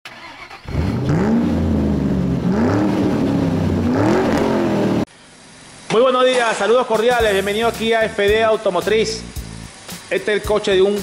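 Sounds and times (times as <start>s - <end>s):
car engine revving: 0.1s - 5.1s.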